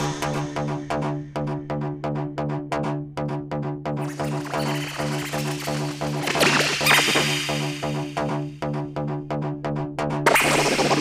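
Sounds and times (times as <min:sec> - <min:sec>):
electronic dance music: 0:04.0 - 0:08.5, 0:10.3 - 0:11.0.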